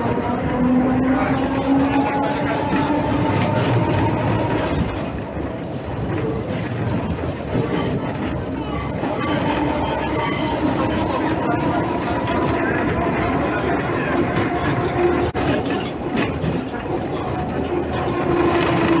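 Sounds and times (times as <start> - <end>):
tram rumbling on track: 0.0 - 19.0
wheels squealing on rails: 0.0 - 19.0.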